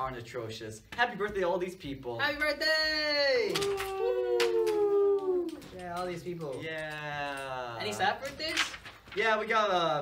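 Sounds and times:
man cheering woo: 3.0 - 5.8.

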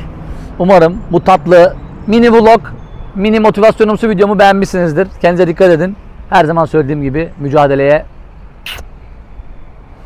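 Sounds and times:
short hiss: 8.6 - 8.9.

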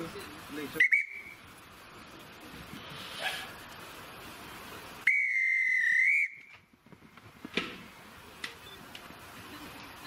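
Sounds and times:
guard's whistle blast: 5.0 - 6.5.

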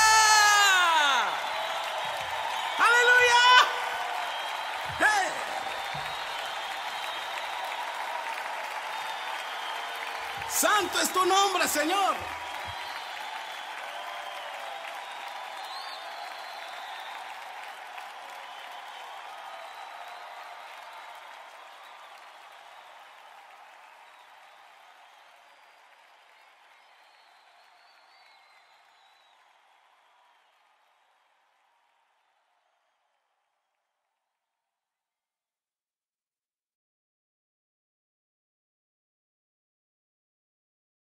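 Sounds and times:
audience applauding: 0.0 - 33.3.

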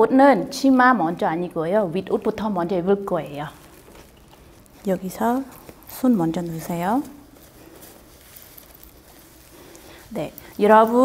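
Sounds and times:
low room noise: 0.0 - 11.0
fabric rustling: 2.0 - 11.0.

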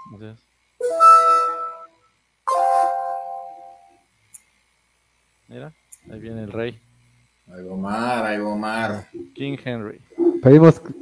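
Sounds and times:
electronic chimes: 0.8 - 3.9.

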